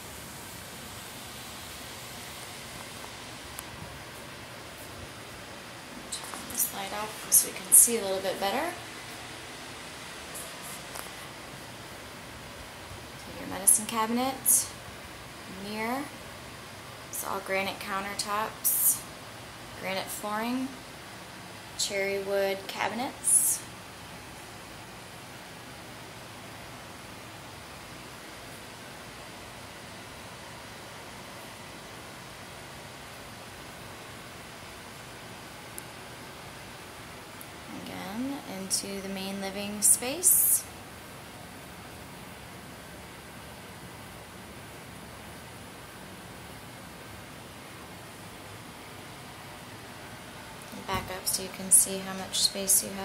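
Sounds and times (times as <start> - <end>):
steady background hiss: 0.0 - 53.0.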